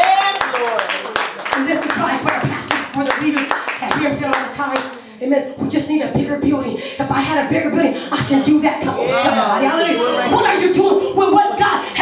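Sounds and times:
hands clapping rhythmically: 0:00.0 - 0:05.1
voices: 0:05.6 - 0:12.0.

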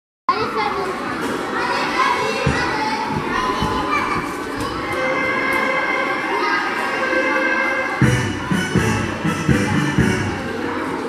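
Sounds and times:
children chattering and calling: 0:00.3 - 0:11.0.

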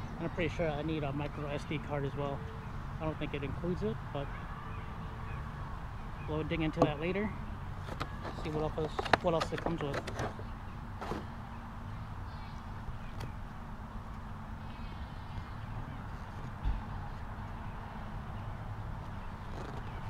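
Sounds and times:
cardboard box rustling: 0:07.8 - 0:11.3.

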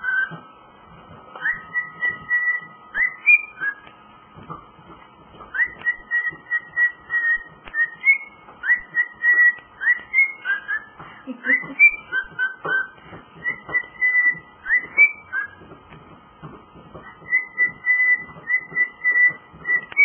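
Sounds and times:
cockatiel whistling: 0:00.0 - 0:00.4, 0:01.4 - 0:03.9, 0:05.5 - 0:15.7, 0:17.0 - 0:20.0.

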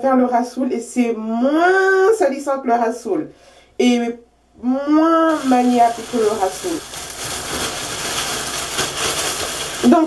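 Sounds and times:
plastic cap crinkling: 0:05.3 - 0:10.0.

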